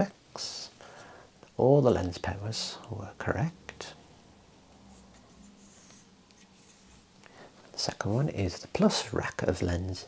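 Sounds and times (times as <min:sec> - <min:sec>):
low steady hum: 0:00.0 - 0:10.0
soft plastic rubbing: 0:04.6 - 0:08.1.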